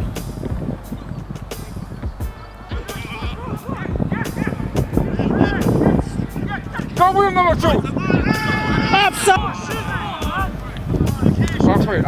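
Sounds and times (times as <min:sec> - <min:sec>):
wind buffeting microphone: 0:00.0 - 0:12.0
distant players shouting: 0:00.9 - 0:11.4.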